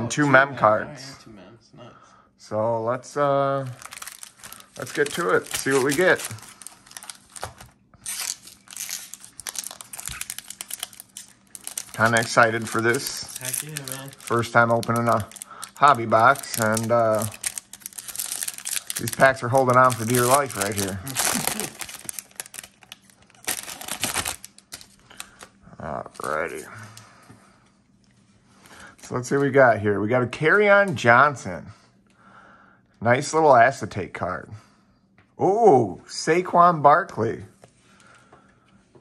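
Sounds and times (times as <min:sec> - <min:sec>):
foil wrappers crinkling: 0:03.6 - 0:26.6
small crackles: 0:03.7 - 0:25.5
pack being torn open: 0:03.8 - 0:25.5
person laughing: 0:20.9 - 0:21.9.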